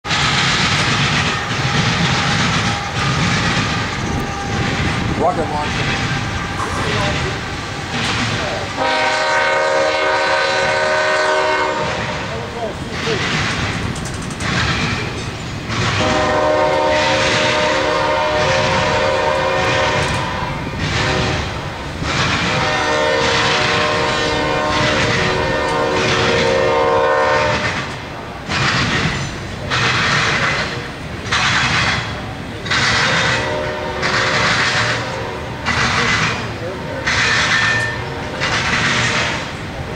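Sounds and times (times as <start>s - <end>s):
freight train rumbling past: 0.0s - 39.9s
locomotive horn blasts: 8.7s - 12.3s, 16.0s - 21.6s, 22.5s - 27.8s, 33.2s - 35.7s, 36.8s - 38.4s.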